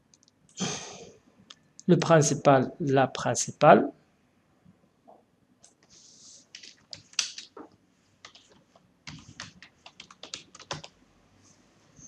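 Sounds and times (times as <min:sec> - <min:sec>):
person speaking: 0:01.8 - 0:03.9
computer mouse clicks: 0:08.2 - 0:10.9.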